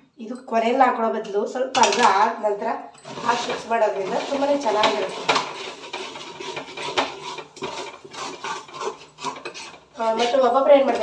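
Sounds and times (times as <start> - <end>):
metal spoon scraping a pot: 3.0 - 11.0.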